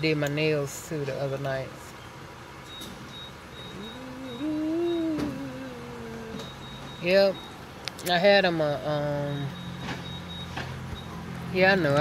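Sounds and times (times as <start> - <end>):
woman humming: 3.6 - 6.7.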